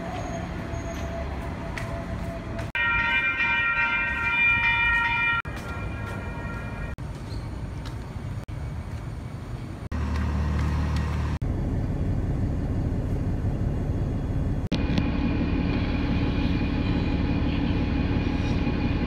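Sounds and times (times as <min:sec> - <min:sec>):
train running hum: 0:00.0 - 0:19.0.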